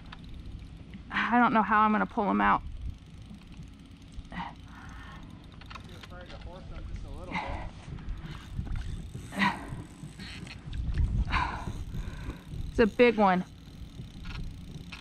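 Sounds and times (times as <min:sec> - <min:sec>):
steady low rumble: 0:00.0 - 0:15.0.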